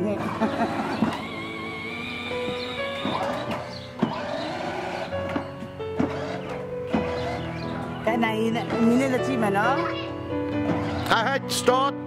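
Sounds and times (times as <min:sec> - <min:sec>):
background music: 0:00.0 - 0:12.0
toy car electric motor whine: 0:00.2 - 0:05.4, 0:06.0 - 0:07.7.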